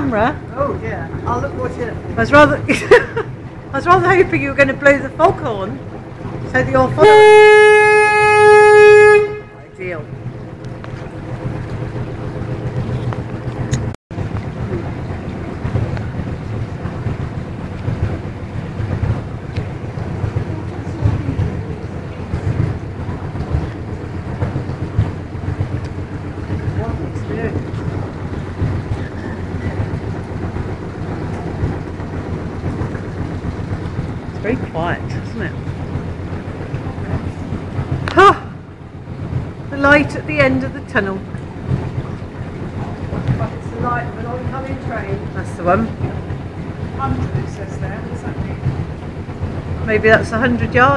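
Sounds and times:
boat engine rumbling: 0.0 - 50.9.

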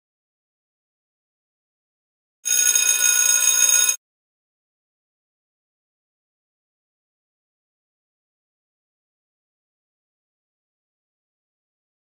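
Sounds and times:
bright electronic ringing tone: 2.5 - 4.0.

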